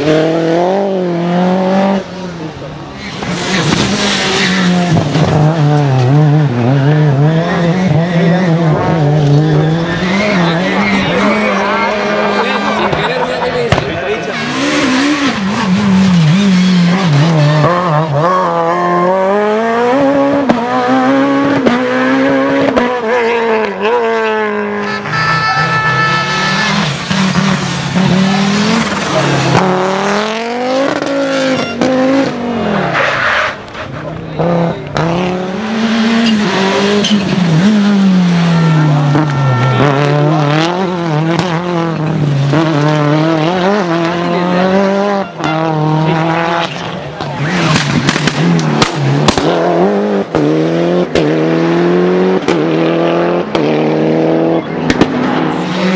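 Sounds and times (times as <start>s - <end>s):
rally car engines revving: 0.0s - 55.9s
tyres skidding and squealing: 2.0s - 22.5s, 24.5s - 51.9s.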